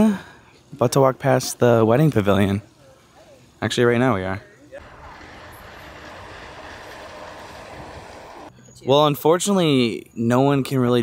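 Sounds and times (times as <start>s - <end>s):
monorail train running: 4.8s - 8.5s.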